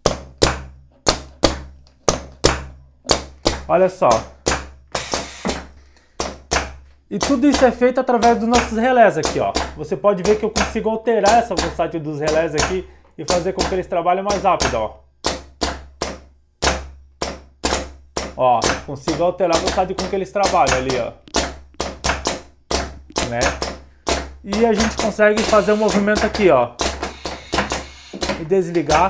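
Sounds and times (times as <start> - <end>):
pneumatic cylinders knocking: 0.0 - 9.8, 19.5 - 29.0.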